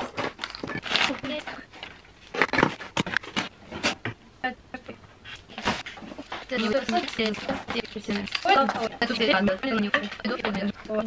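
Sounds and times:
household items rustling and clattering: 0.0s - 4.2s, 5.2s - 11.0s.

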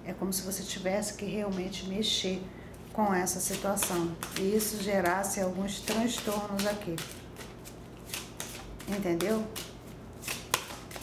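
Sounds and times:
cards being shuffled: 3.4s - 11.0s.

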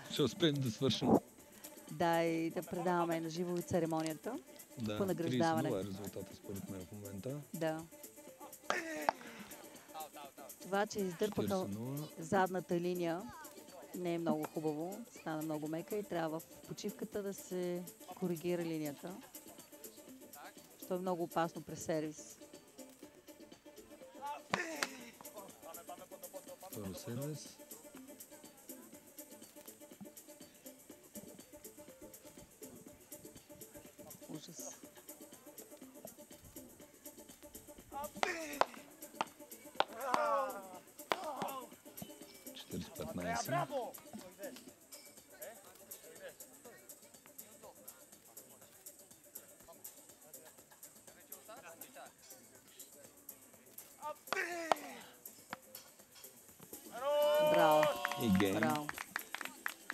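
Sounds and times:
faint background music: 0.0s - 59.9s
players calling out: 37.9s - 41.7s, 56.8s - 58.9s
paddles hitting ball: 38.2s - 40.4s, 41.0s - 41.6s.

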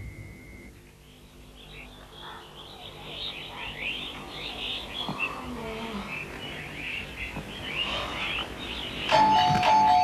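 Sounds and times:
birds chirping faintly: 0.0s - 10.0s
two-note doorbell ring: 9.1s - 10.0s.

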